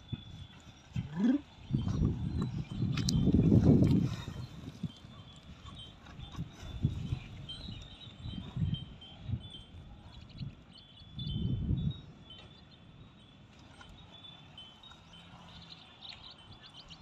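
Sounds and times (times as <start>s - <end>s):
dull thuds of hooves and soil: 1.7s - 8.8s.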